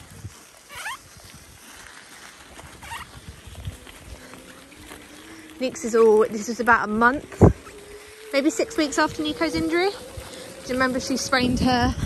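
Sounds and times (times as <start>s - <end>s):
bike tyres crunching on gravel: 0.0s - 12.0s.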